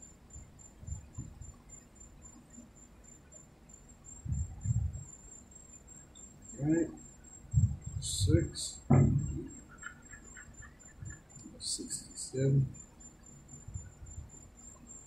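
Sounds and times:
faint high-pitched whine: 0.0 - 15.0.

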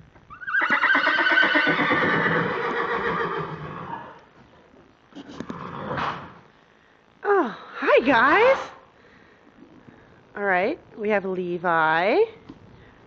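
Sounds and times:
horse neighing: 0.3 - 4.2.

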